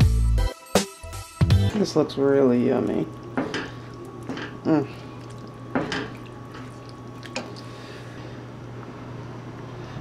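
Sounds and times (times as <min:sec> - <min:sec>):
steady low hum: 0:01.7 - 0:10.0.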